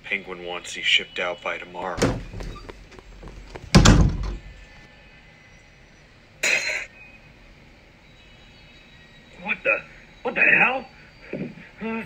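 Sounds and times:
heavy door slamming: 2.0s - 2.7s, 3.5s - 4.6s.

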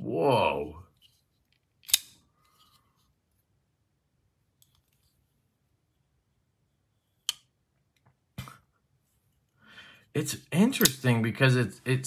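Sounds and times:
knife handling ticks: 10.8s - 11.0s.

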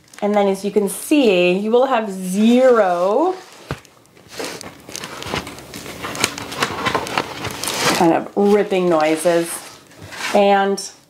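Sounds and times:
paper pages rustling and crackling: 2.4s - 10.5s.

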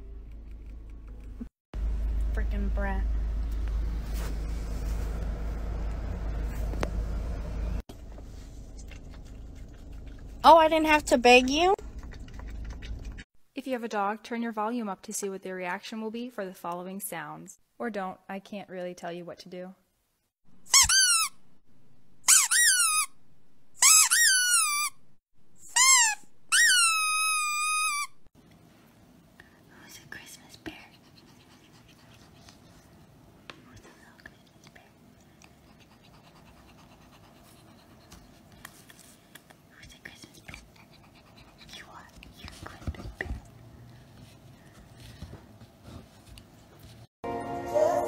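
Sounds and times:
high-pitched squeaks: 25.6s - 28.2s.

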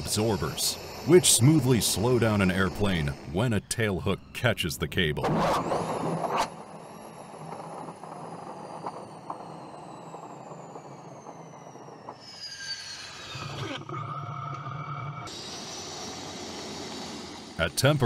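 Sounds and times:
rough engine with steady tones: 0.0s - 3.9s, 5.2s - 18.0s
jet engines whining: 0.0s - 18.0s.

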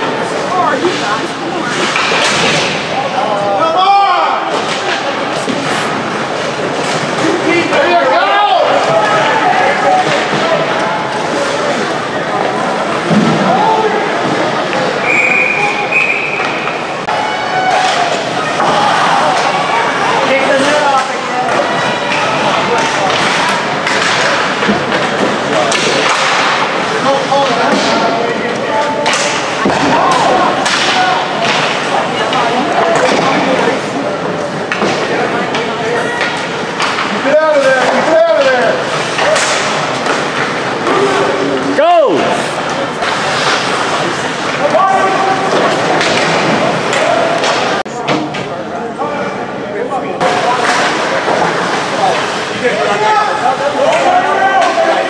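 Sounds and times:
puck and sticks knocking boards: 1.7s - 2.9s, 20.4s - 33.5s, 34.7s - 41.2s, 42.9s - 48.4s.

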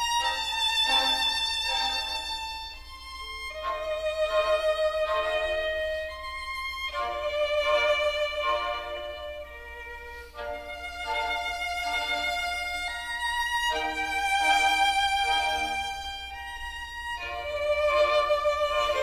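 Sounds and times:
violin playing slow melody: 0.0s - 19.0s.

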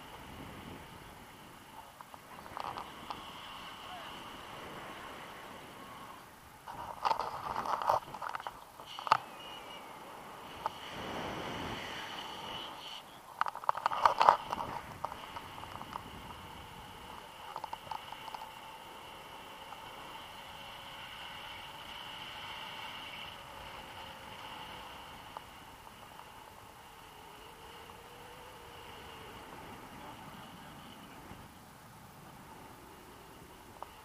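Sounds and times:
camera knocking and rattling: 6.7s - 9.2s, 13.4s - 16.1s.

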